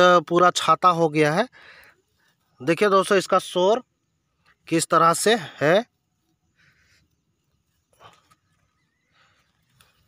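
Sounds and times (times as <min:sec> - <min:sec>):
faint rustle of grass and leaves: 0:00.0 - 0:10.0.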